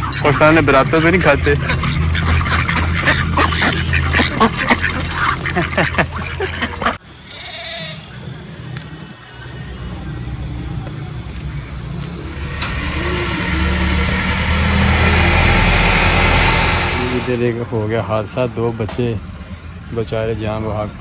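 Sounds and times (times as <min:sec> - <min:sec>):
low rumble with rushing noise: 0:12.2 - 0:17.8.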